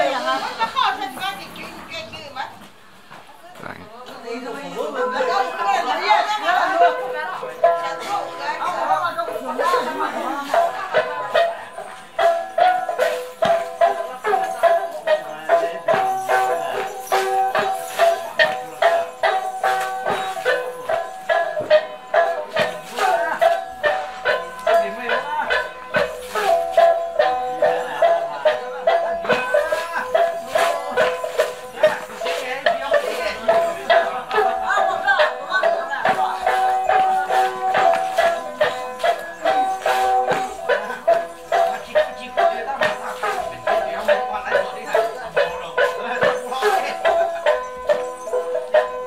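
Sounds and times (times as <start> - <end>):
crowd chatting: 0.0 - 49.0
held musical notes: 4.2 - 49.0.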